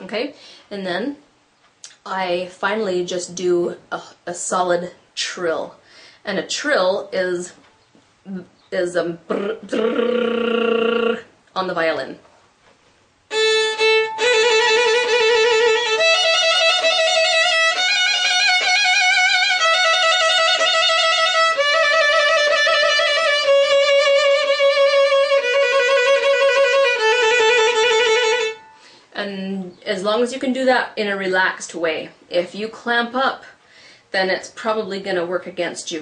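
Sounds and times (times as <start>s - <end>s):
violin trills: 13.3s - 29.0s.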